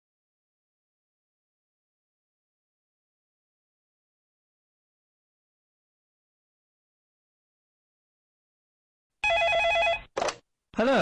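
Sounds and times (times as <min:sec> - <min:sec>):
electronic telephone ringer trilling: 0:09.2 - 0:10.1.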